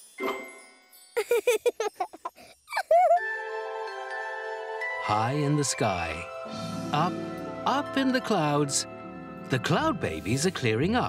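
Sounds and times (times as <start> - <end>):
cartoon jingle music: 0.0 - 6.3.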